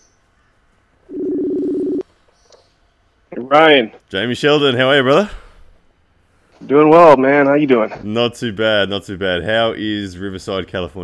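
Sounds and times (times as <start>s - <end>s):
telephone line beep: 1.1s - 2.0s.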